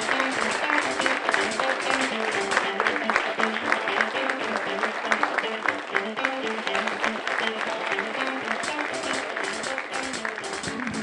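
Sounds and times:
audience applauding: 0.0 - 11.0
background music melody: 0.0 - 11.0.

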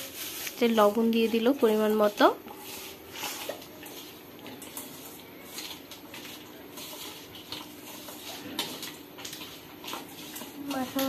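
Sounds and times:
hands squishing wet food: 2.4 - 11.0.

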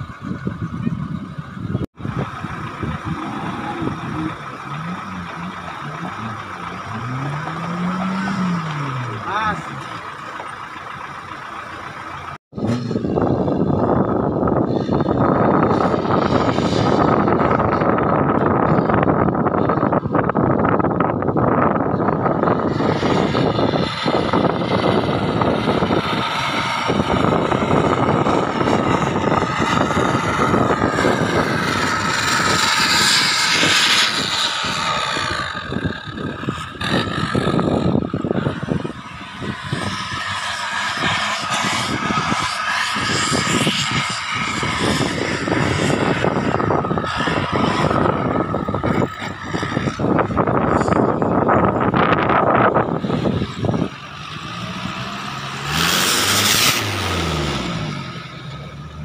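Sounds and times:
off-road vehicle engines revving: 0.0 - 59.0.

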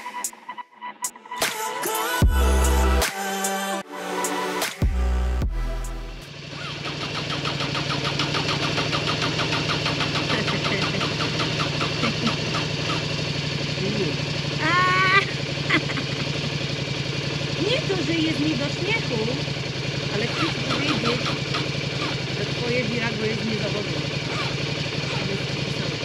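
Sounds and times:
motorcycle engine idling: 2.2 - 3.0, 4.8 - 26.0.

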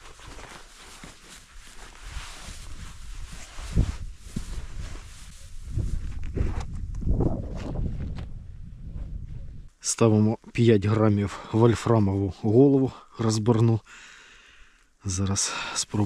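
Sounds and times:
footsteps rustling through grass: 0.0 - 6.3
wind buffeting microphone: 2.6 - 9.7.

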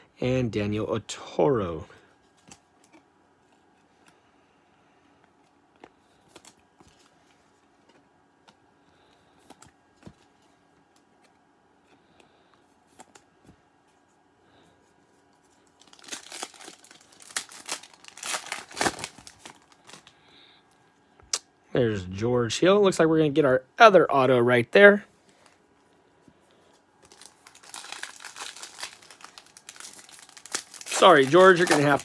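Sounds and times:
wrapper torn open and crinkled: 15.8 - 20.0, 27.0 - 32.0.

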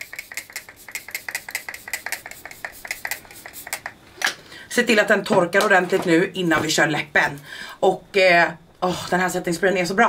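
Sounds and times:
spray bottle hissing mist: 0.0 - 3.9.

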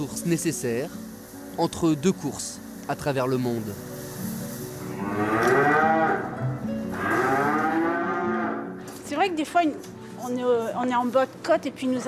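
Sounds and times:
cattle mooing: 4.9 - 8.7.

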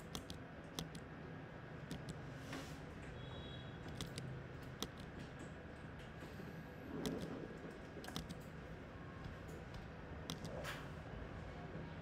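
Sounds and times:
computer keyboard clicks: 0.0 - 1.0, 1.9 - 2.2, 3.9 - 5.5, 7.0 - 7.4, 8.0 - 8.6, 9.3 - 10.7.

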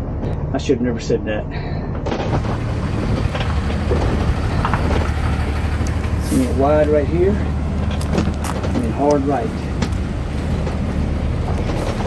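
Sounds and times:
motorhome engine rumble: 0.0 - 12.0.

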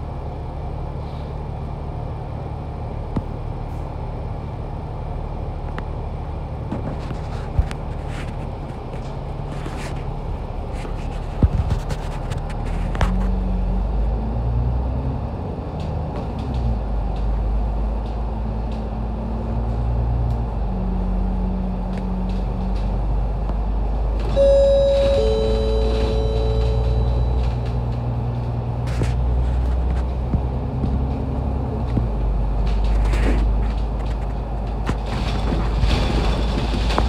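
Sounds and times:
bus engine humming: 12.4 - 37.0
falling two-note electronic chime: 24.4 - 27.8.

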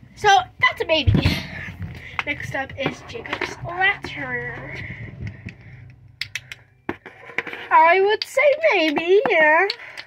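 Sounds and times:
wooden toy blocks clacking: 5.2 - 10.0.

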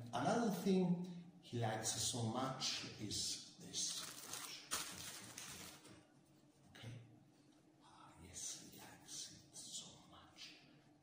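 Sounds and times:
rustling of props being handled: 3.9 - 6.1.

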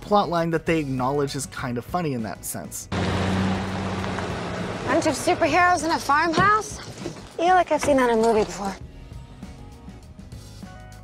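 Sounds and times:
car engines humming: 2.9 - 7.4
road noise: 2.9 - 8.7.

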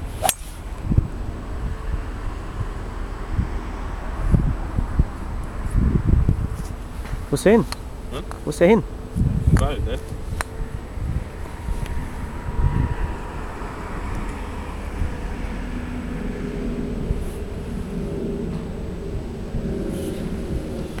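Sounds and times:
wind rumbling on microphone: 0.0 - 21.0.

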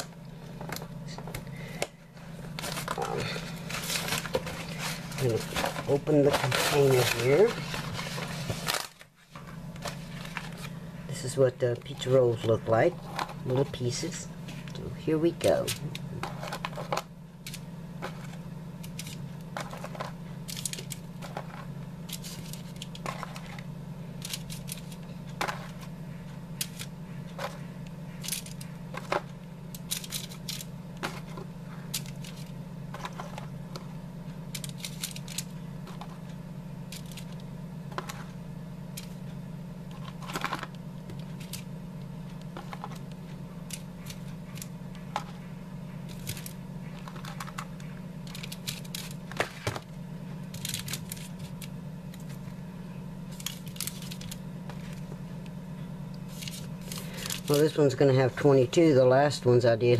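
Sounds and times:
steady low hum: 0.0 - 59.9
foil crinkling and clicks: 2.5 - 10.8, 46.1 - 49.8, 50.5 - 52.4, 53.3 - 55.1, 56.3 - 57.8.

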